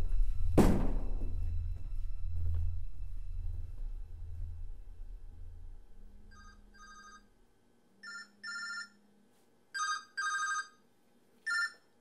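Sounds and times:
phone ringtone: 6.3s - 7.3s, 8.0s - 9.0s, 9.8s - 10.8s, 11.4s - 12.0s.

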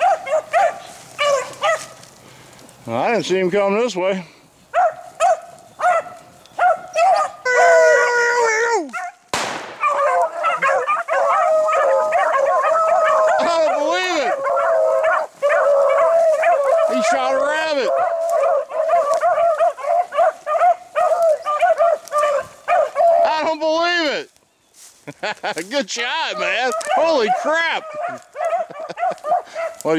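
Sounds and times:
dogs baying and yelping: 0.0s - 2.1s, 4.7s - 23.5s, 26.1s - 29.9s
sharp crack: 8.9s - 10.4s.

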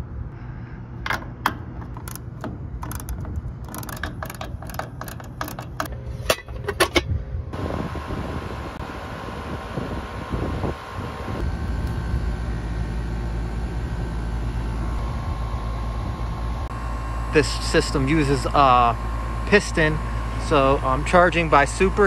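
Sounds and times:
air conditioner fan and compressor hum: 0.0s - 22.0s
deeper hum: 0.0s - 22.0s.

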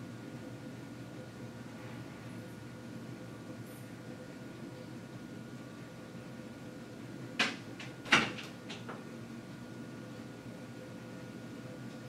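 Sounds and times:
steady faint hum: 0.0s - 12.0s.

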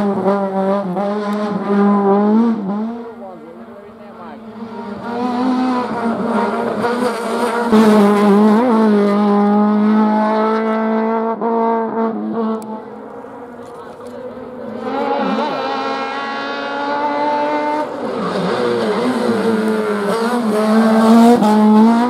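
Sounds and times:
car engine at high revs: 0.0s - 22.0s.

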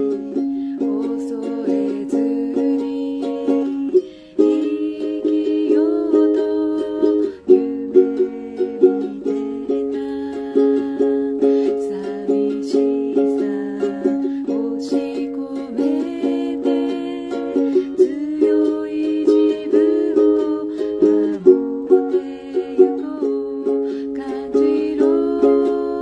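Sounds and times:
ukulele strumming: 0.0s - 26.0s.

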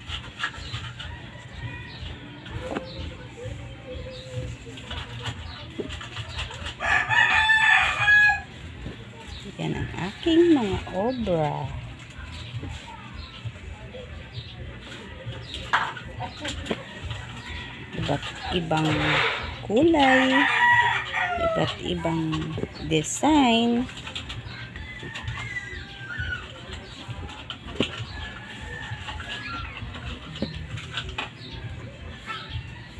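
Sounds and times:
low rumbling handling noise: 0.0s - 32.9s
rooster crowing: 6.8s - 8.5s.

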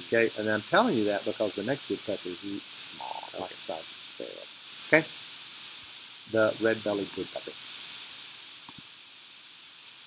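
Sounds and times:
recording hiss: 0.0s - 10.0s
faint short ticks: 8.7s - 8.9s.

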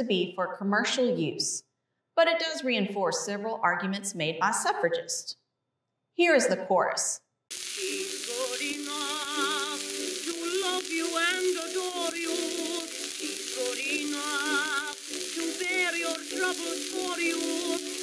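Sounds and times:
record hiss and crackle: 7.5s - 18.0s
woman singing with vibrato: 8.3s - 18.0s.

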